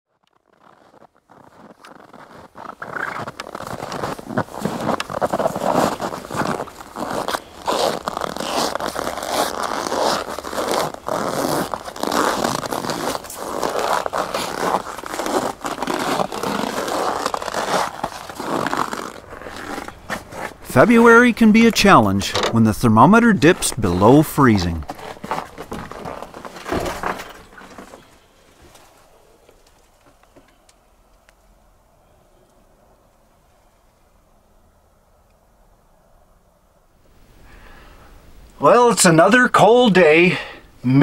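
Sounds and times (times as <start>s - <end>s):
footsteps crunching through snow: 0.1s - 30.0s.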